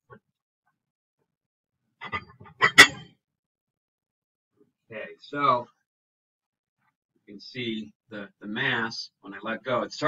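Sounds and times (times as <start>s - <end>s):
weight plates knocking and scraping: 2.0s - 3.1s.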